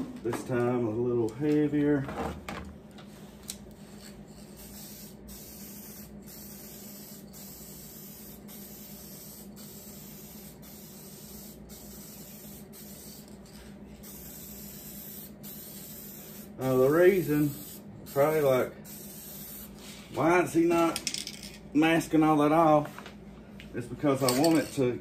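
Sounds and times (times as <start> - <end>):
spray paint can hissing: 3.8 - 13.4, 14.0 - 19.8.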